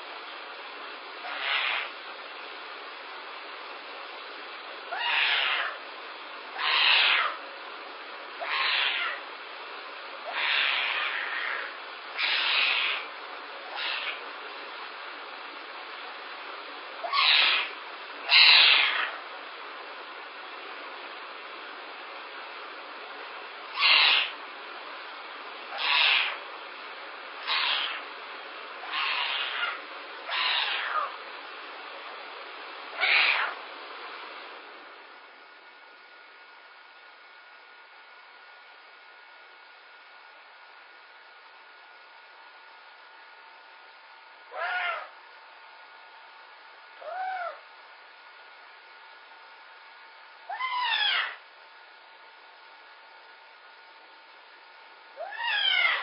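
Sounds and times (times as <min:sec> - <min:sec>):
steady hiss: 0:00.0 - 0:38.0
young animal crying out: 0:01.2 - 0:02.0, 0:04.9 - 0:05.8, 0:06.5 - 0:07.4, 0:08.4 - 0:09.2, 0:10.2 - 0:13.1, 0:13.7 - 0:14.2, 0:17.0 - 0:19.2, 0:23.7 - 0:24.4, 0:25.7 - 0:26.4, 0:27.4 - 0:28.1, 0:28.8 - 0:31.2, 0:32.9 - 0:33.6, 0:44.5 - 0:45.2, 0:47.0 - 0:47.6, 0:50.5 - 0:51.4, 0:55.2 - 0:56.0.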